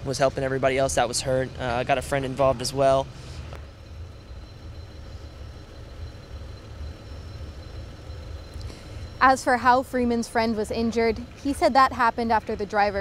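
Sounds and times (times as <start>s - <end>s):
faint high whine: 0.0s - 13.0s
low outdoor rumble: 0.0s - 13.0s.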